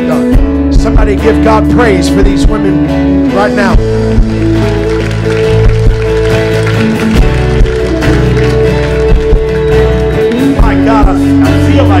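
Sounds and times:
acoustic guitar: 0.0 - 12.0
held chords: 0.0 - 12.0
steady bass line: 0.0 - 12.0.

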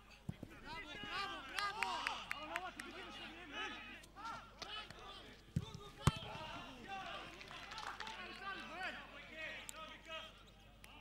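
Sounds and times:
players shouting: 0.4 - 4.9, 5.7 - 9.0
football being kicked: 5.6 - 6.5.

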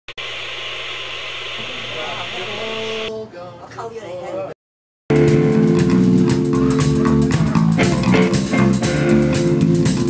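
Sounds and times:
steady hiss: 0.2 - 3.1.

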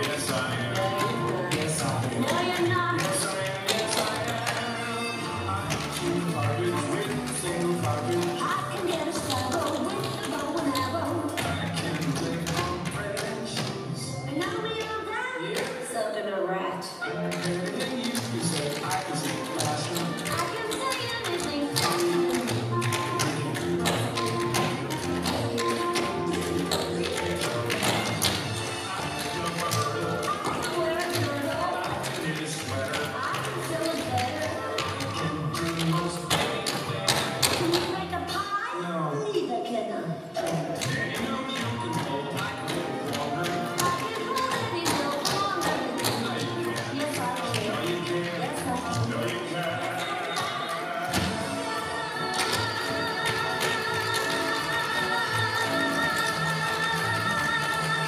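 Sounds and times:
tap shoes on wooden floor: 0.0 - 4.7, 5.6 - 15.8, 17.3 - 38.2, 40.4 - 51.6
show tune music: 0.0 - 58.0.

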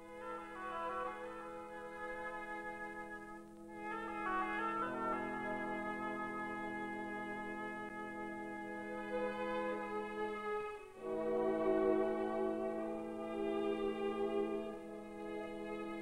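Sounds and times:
orchestral music with held chords: 0.0 - 16.0.

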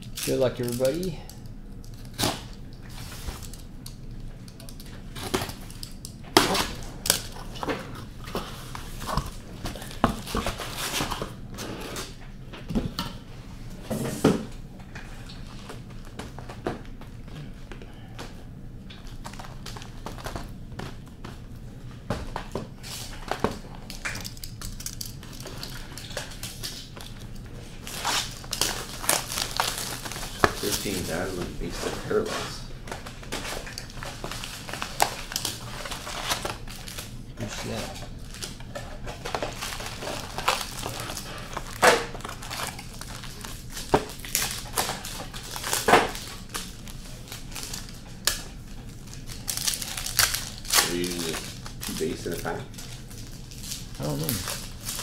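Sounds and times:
cardboard crinkling: 22.9 - 55.0.

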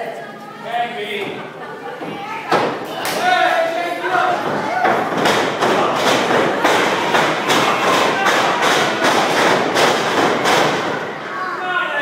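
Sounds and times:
loud evenly spaced thumps: 4.1 - 11.2.

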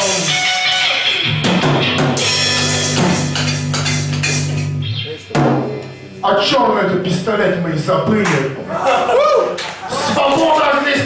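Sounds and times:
live rock band playing: 0.0 - 6.2.

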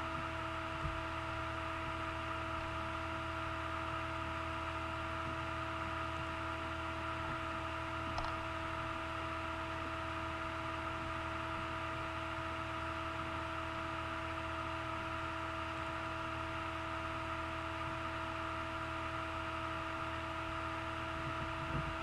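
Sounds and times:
electrical hum and hiss: 0.0 - 22.0.

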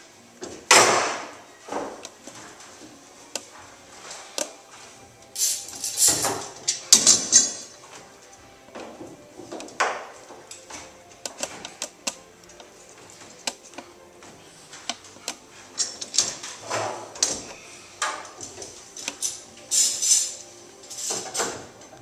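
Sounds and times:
metal clamps clicking and knocking: 5.4 - 7.7, 14.9 - 22.0.

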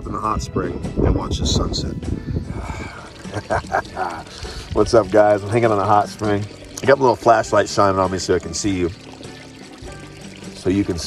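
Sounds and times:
water pouring and trickling: 2.4 - 11.0.

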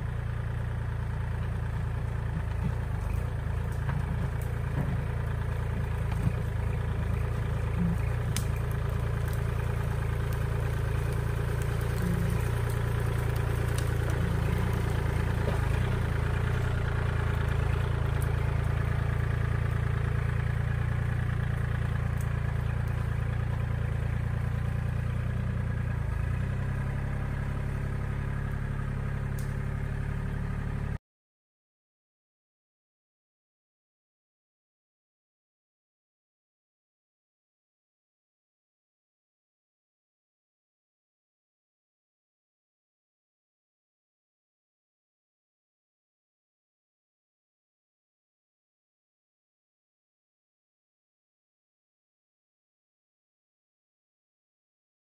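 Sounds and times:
front loader pushing brush and dirt: 0.0 - 31.0
tractor diesel engine running: 0.0 - 31.0.

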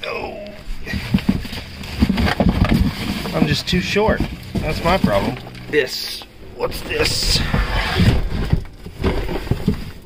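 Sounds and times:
rummaging in cardboard box: 0.8 - 5.6, 6.6 - 10.0.

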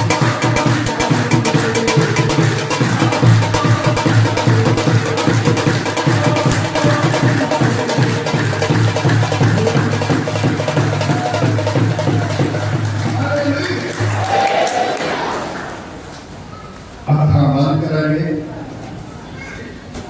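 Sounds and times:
devotional music with hand drums: 0.0 - 14.2
congregation clapping: 0.0 - 16.4.

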